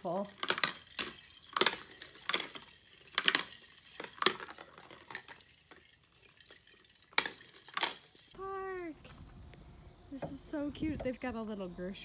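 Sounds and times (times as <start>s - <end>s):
faint rattle: 0.0s - 8.4s
plastic balls clacking: 0.0s - 8.4s.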